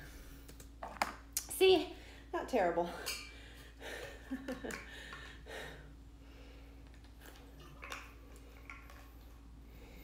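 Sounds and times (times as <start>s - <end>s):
woman breathing: 3.2s - 6.9s.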